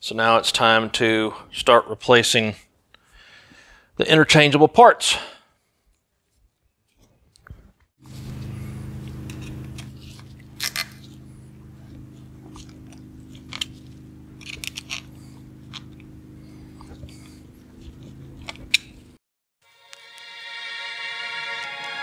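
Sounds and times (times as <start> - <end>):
steady low hum: 8.0 - 19.2.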